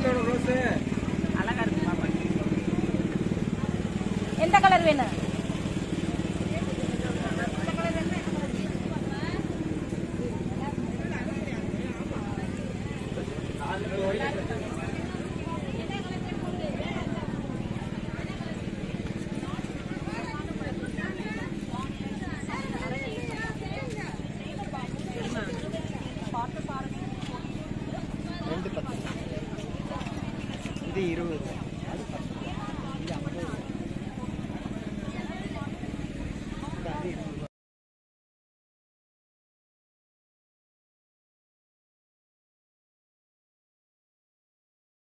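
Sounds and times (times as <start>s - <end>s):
low engine hum: 0.0s - 37.5s
people talking in background: 0.0s - 37.5s
people's voices: 0.0s - 37.5s.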